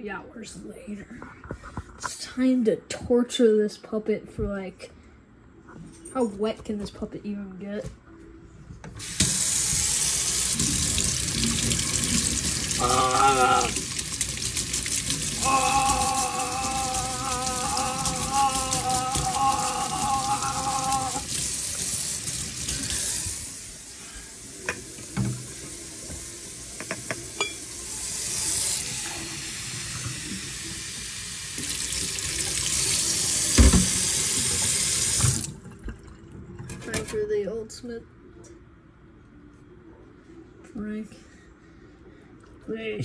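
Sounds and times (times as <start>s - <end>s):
faucet water running into sink: 9.0s - 36.4s.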